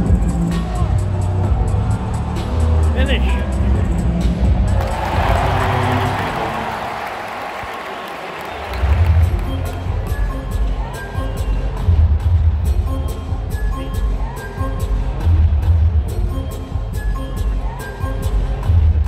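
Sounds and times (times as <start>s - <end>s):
music with pulsing bass beat: 0.0s - 5.6s, 9.0s - 19.0s
crowd noise: 0.0s - 19.0s.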